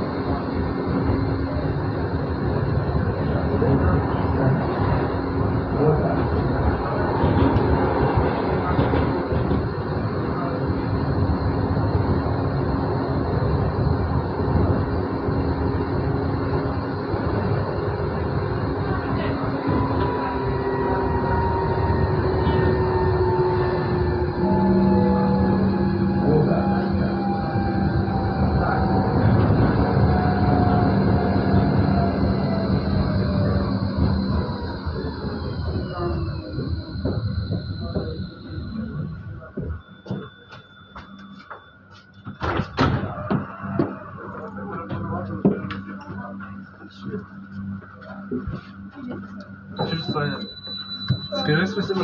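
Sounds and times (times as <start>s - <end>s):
wheels rumbling on rail: 0.0s - 52.0s.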